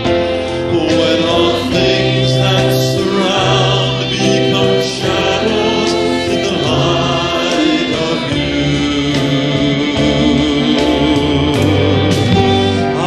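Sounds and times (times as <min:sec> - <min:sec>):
group singing worship song: 0:00.0 - 0:13.0.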